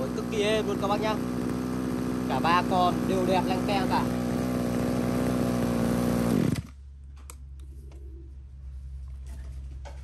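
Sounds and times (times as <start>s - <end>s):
brush cutter engine running: 0.0s - 6.8s.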